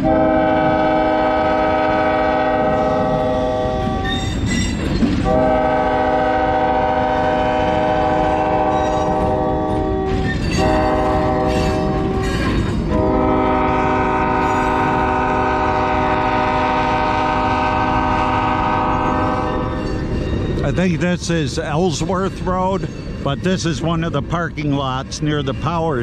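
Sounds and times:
locomotive air horn blasts: 0.0s - 4.5s, 5.2s - 19.8s
train rumbling on rails: 0.0s - 26.0s.

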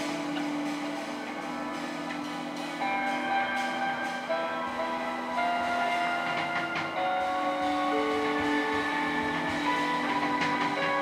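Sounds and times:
electric guitar: 0.0s - 11.0s
piano: 0.0s - 11.0s.

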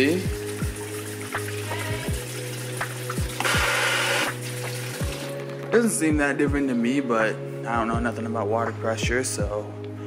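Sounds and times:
faucet water rushing: 0.0s - 5.4s.

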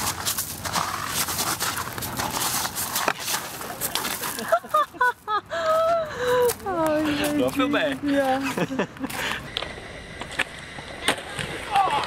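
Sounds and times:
knocks and scuffing on gravel: 0.0s - 5.0s.

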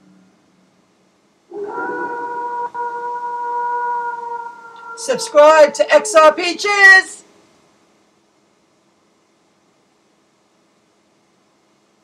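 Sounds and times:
wolf howl: 1.5s - 6.0s.

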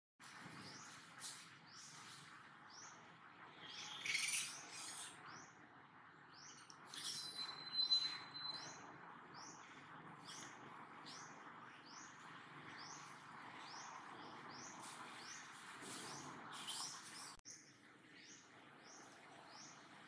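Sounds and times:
birds chirping: 0.3s - 20.0s.

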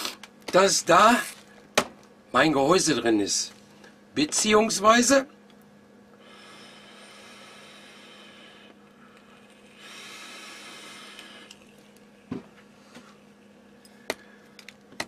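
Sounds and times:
steady low hum: 0.0s - 15.0s
electronic cigarette draws hissing: 6.2s - 12.0s.

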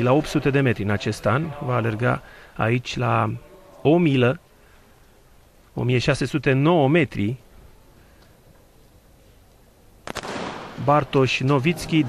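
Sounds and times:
starting pistol crack: 10.1s - 11.0s
crowd noise: 10.8s - 12.0s.

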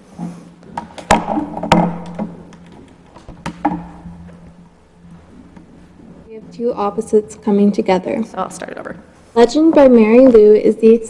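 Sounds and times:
low electrical hum: 0.0s - 11.0s
handling knocks: 0.2s - 4.5s.

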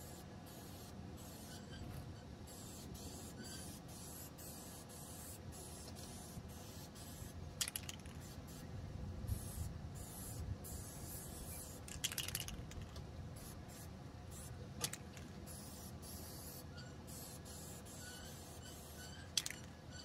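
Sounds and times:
aerosol can rattle: 7.6s - 8.3s, 11.8s - 13.0s, 14.8s - 15.3s, 19.4s - 19.7s.

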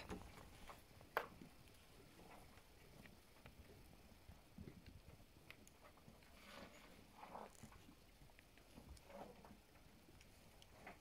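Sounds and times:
faint soft noises: 0.0s - 11.0s.

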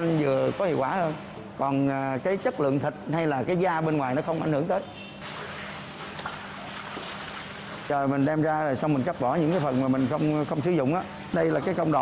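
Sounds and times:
fish splashing in water: 5.2s - 8.0s
water trickling: 5.2s - 12.0s.

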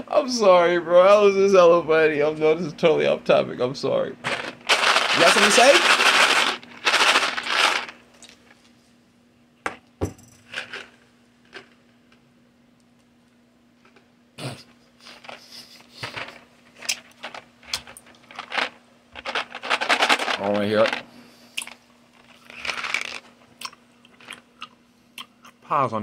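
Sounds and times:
faint steady hum: 0.0s - 26.0s
candies rattling in a box: 4.3s - 8.0s, 10.5s - 11.8s, 15.0s - 23.3s.

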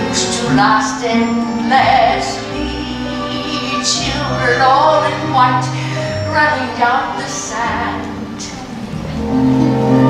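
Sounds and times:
orchestral ballad accompaniment: 0.0s - 10.0s.

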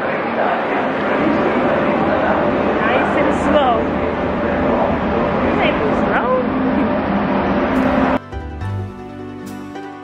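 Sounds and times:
railway platform din: 0.0s - 8.2s
soft background music: 7.8s - 10.0s.

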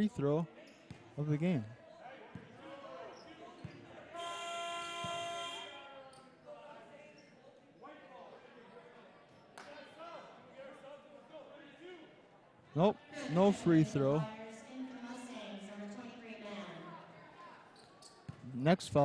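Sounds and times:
crowd chatter echoing: 0.0s - 19.0s
scoreboard horn: 4.2s - 5.8s.

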